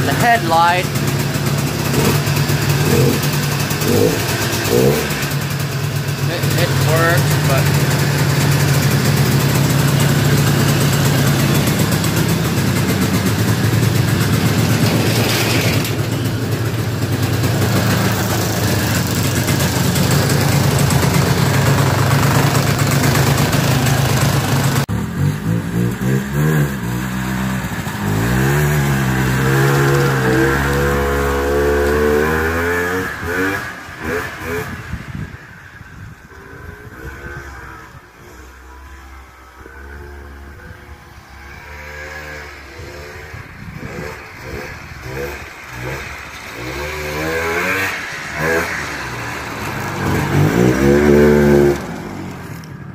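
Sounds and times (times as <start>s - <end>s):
two-stroke snowmobile engine revving: 0.0s - 52.7s.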